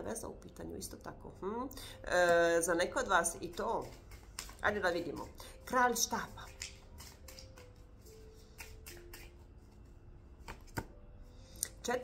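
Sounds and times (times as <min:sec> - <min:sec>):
cards being shuffled: 0:03.0 - 0:11.0.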